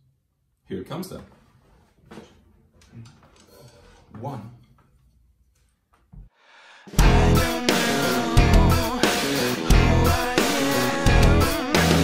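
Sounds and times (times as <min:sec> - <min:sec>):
rock band with drum kit: 0:06.9 - 0:12.0.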